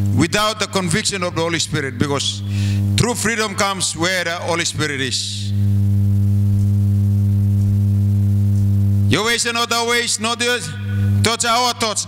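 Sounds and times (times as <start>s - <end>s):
electrical hum with buzz: 0.0s - 12.0s.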